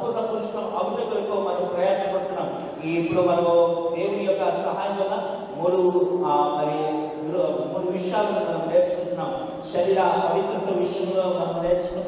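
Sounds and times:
man preaching into a microphone: 0.0s - 12.0s.

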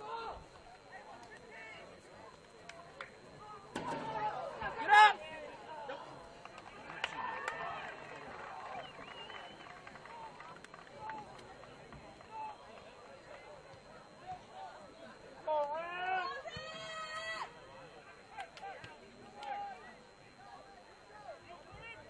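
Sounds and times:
players shouting and calling: 0.0s - 22.0s.

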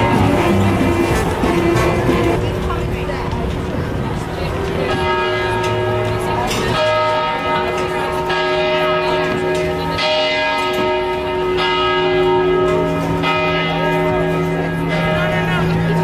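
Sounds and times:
large bell tolling: 0.0s - 3.7s, 4.4s - 16.0s
crowd voices: 0.0s - 16.0s.

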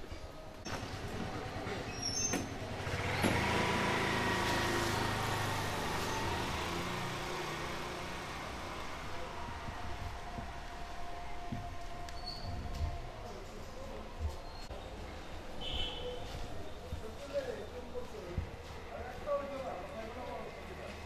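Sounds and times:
vehicle passing: 2.6s - 11.3s.

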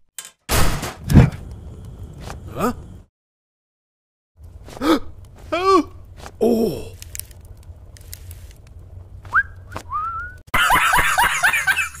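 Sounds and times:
rising whistled notes: 9.3s - 10.4s
man laughing loudly: 10.6s - 12.0s.

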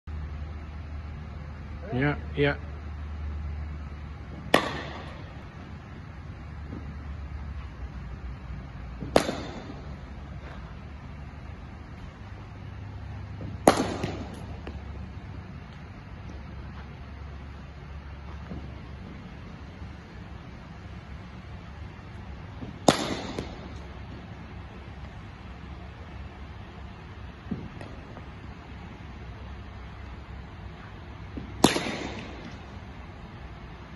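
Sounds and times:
cricket bat hitting ball: 4.3s - 5.5s, 9.0s - 10.7s, 13.4s - 15.1s, 22.2s - 24.3s, 31.3s - 32.8s.

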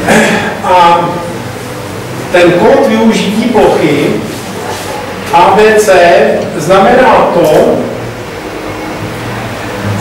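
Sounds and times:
low constant hum: 0.0s - 10.0s.

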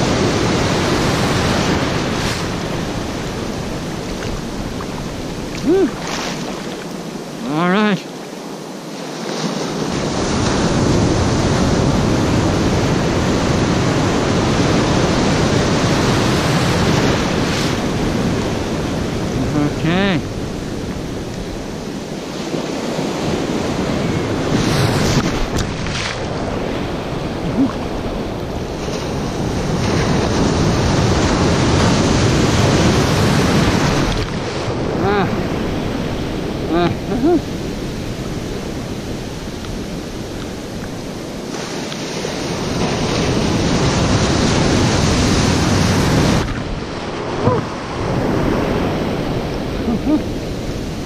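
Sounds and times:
wind buffeting microphone: 0.0s - 7.5s
surf washing and foaming: 0.0s - 51.0s.

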